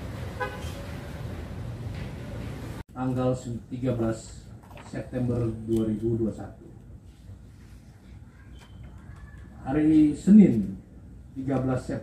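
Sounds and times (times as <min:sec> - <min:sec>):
street traffic rumble: 0:00.0 - 0:12.0
car horn toot: 0:00.4 - 0:00.8.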